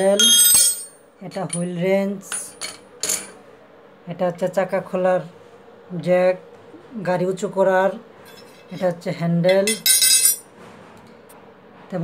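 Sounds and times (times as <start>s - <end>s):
steel tools clinking on floor: 0.0s - 1.7s, 9.5s - 10.5s.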